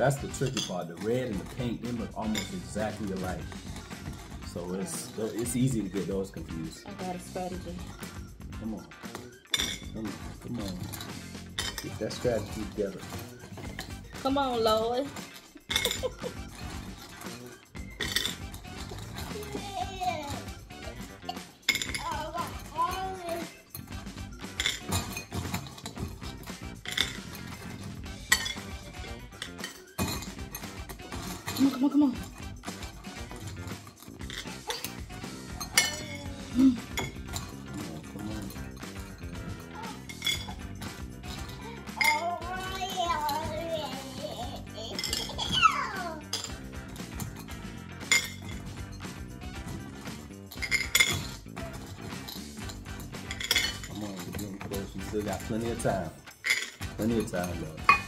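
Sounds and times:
candies clinking against glass bowl: 0.0 - 58.0.

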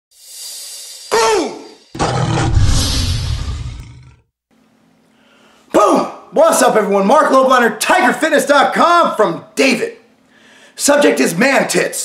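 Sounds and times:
big cat growl: 2.0 - 4.2
low tiger roar: 2.0 - 4.2
rising whoosh: 2.3 - 4.1.

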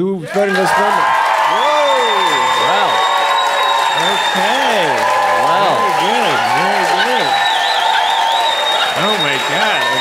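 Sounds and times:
crowd whooping and shouting: 0.2 - 10.0
audience applauding: 0.3 - 10.0.

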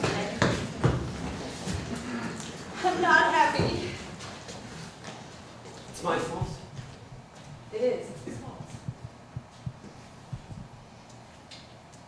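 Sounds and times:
low room hum: 0.0 - 12.0
soft low thumps: 6.3 - 7.7, 8.3 - 11.0.

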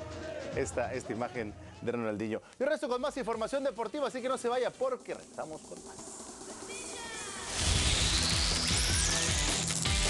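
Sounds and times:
intro music: 3.2 - 10.0
falling electronic tones: 7.3 - 10.0.

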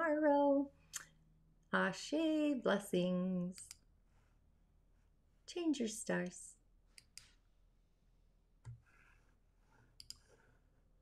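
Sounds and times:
faint clicks: 10.0 - 10.3.

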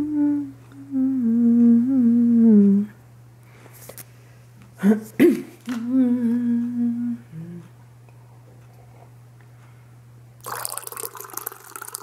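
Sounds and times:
person humming a tune: 0.0 - 3.0, 4.8 - 7.8
air conditioner hum: 0.0 - 12.0.

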